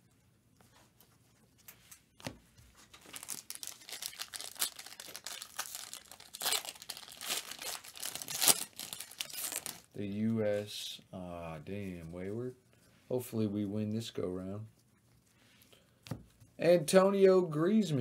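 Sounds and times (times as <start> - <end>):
foil wrapper crinkling and ripping: 2.8 - 10.0.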